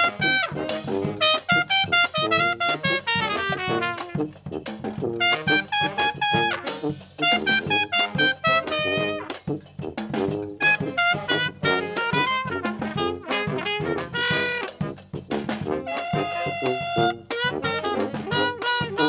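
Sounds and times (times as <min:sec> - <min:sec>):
bass drum and cymbal beat: 0:00.0 - 0:19.0
brass band playing: 0:00.0 - 0:19.0
trumpet melody: 0:00.0 - 0:19.0.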